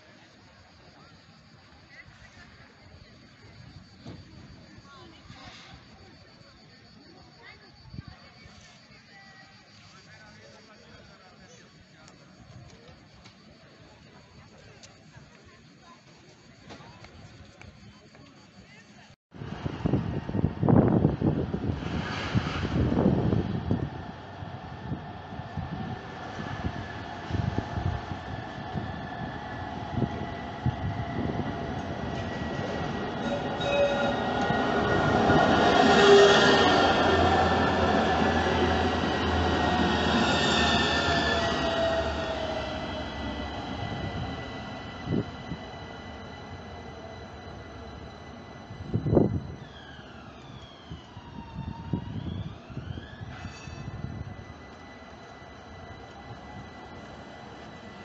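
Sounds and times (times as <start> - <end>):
tram passing on track: 0.0 - 58.0
gliding squeals: 22.6 - 58.0.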